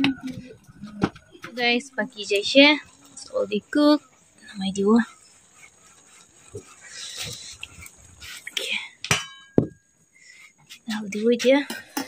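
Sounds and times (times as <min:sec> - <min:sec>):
steel cookware knocking: 0:09.0 - 0:09.8
metallic ring: 0:09.0 - 0:10.0.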